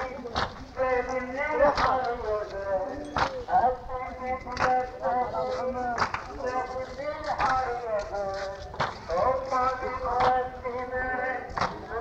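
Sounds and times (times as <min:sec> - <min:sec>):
man chanting a lament: 0:00.0 - 0:12.0
chest beating slaps: 0:06.0 - 0:06.3, 0:11.6 - 0:11.8.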